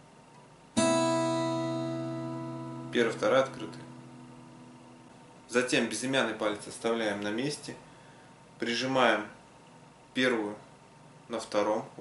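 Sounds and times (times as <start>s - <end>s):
acoustic guitar chord ringing: 0.8s - 5.4s.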